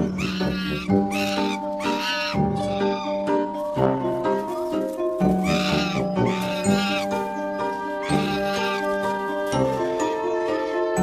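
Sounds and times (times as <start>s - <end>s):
young monkey whining cries: 0.0s - 3.3s, 5.3s - 7.2s, 7.8s - 9.2s
background music with held notes: 0.0s - 11.0s.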